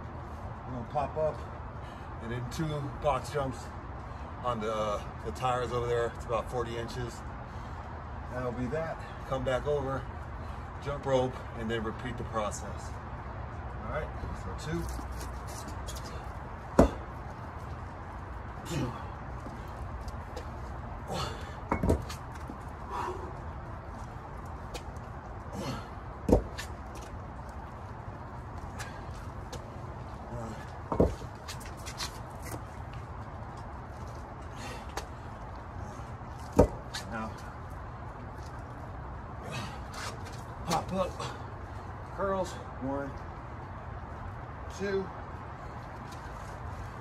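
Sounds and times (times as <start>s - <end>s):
hard breathing: 21.0s - 21.7s, 22.7s - 23.7s, 25.4s - 26.2s, 34.4s - 36.3s.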